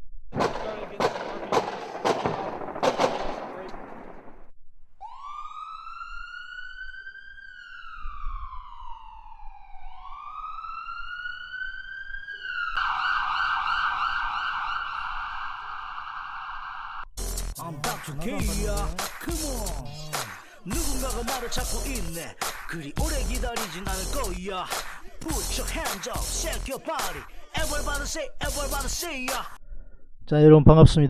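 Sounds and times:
crackling with sharp pops: 0:00.4 - 0:04.5, 0:24.7 - 0:26.2
siren wailing and yelping: 0:05.0 - 0:17.0.

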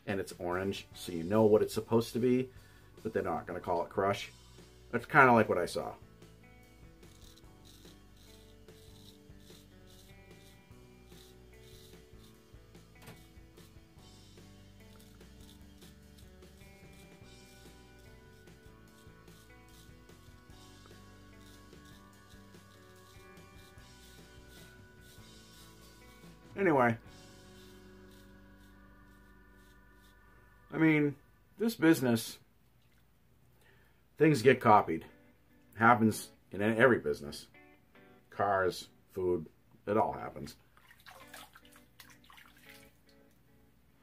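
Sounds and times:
faint background music: 0:00.0 - 0:32.5, 0:34.1 - 0:44.0
razor scraping stubble: 0:05.0 - 0:30.7.

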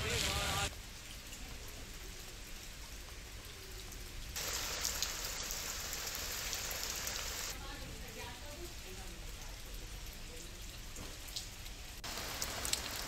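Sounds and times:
heavy rain hissing: 0:00.0 - 0:00.7, 0:04.4 - 0:07.6, 0:12.0 - 0:13.0.

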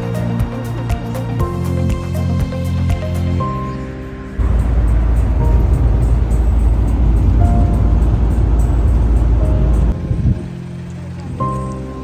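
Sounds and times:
background music: 0:00.0 - 0:12.0
vehicle engine and road rumble: 0:00.0 - 0:12.0.

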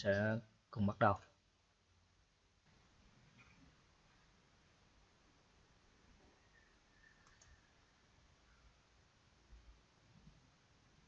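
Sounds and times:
computer mouse clicks: 0:07.0 - 0:07.7.

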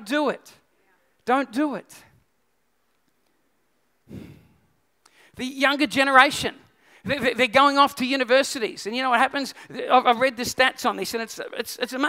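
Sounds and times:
man's short breath: 0:04.1 - 0:05.4.

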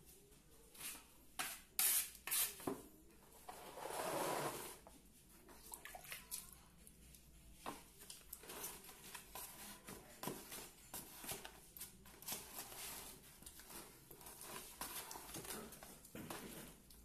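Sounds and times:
cement stirred in plastic bucket: 0:07.6 - 0:17.0.

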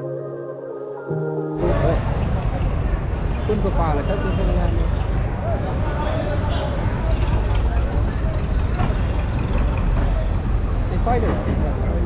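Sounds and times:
people talking: 0:01.6 - 0:02.3
low rumble of road vehicles: 0:01.6 - 0:12.0.

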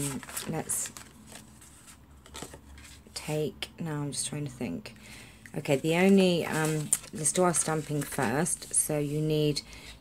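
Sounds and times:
cardstock rustling and sliding: 0:05.7 - 0:09.5.

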